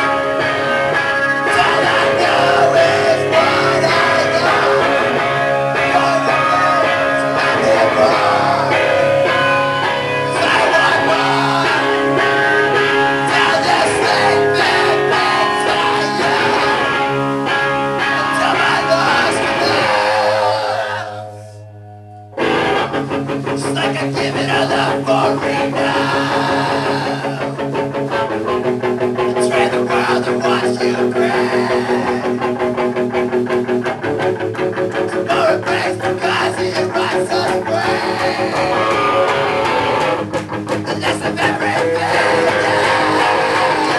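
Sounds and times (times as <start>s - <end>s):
drums: 0.0s - 20.9s, 22.4s - 43.9s
electric guitar chords: 0.0s - 43.9s.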